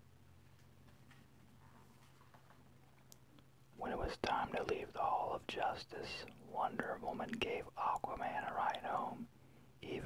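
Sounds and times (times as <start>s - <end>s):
person whispering: 3.8s - 10.0s.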